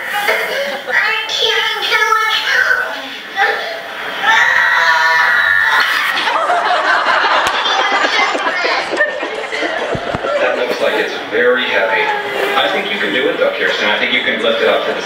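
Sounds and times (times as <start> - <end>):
audience laughing: 0.1 - 1.1, 5.8 - 12.9
small child's voice: 0.2 - 3.8.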